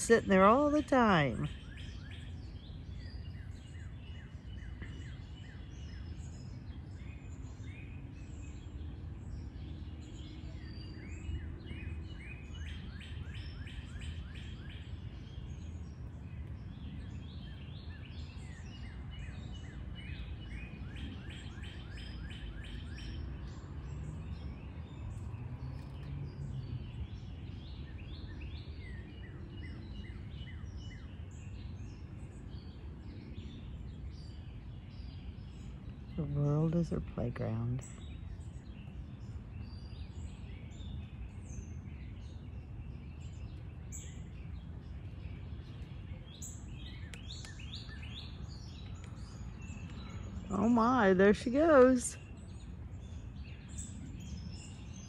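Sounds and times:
birds chirping: 0.0s - 55.0s
low outdoor rumble: 14.8s - 55.0s.

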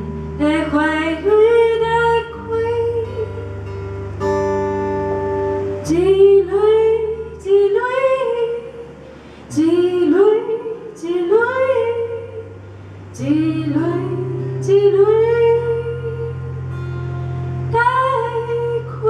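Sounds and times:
woman singing: 0.0s - 3.6s, 5.8s - 16.6s, 17.7s - 19.0s
acoustic guitar notes: 0.0s - 19.0s.

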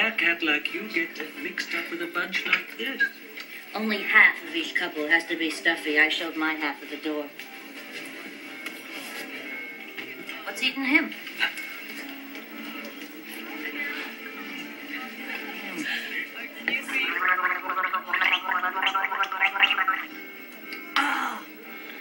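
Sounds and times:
background music: 0.0s - 22.0s
woman gargling: 16.9s - 20.1s.

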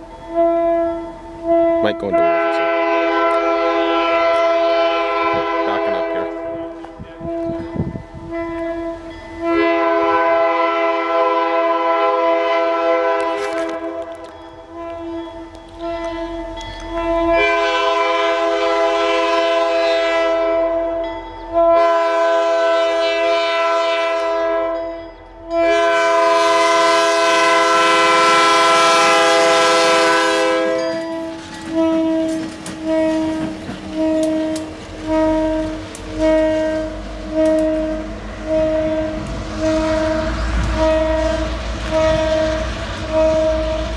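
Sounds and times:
train rumble: 0.0s - 43.9s
locomotive air horn: 0.3s - 43.9s.

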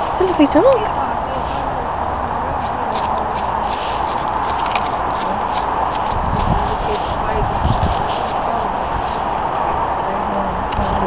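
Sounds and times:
road traffic hum: 0.0s - 11.0s
footsteps through dry grass: 2.6s - 9.9s.

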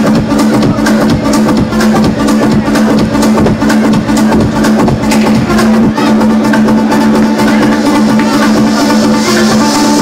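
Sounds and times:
house dance music: 0.0s - 10.0s.

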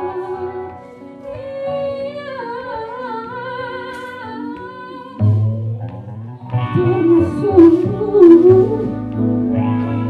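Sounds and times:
woman singing with vibrato: 0.0s - 5.9s, 6.6s - 10.0s
live band playing: 5.2s - 10.0s.

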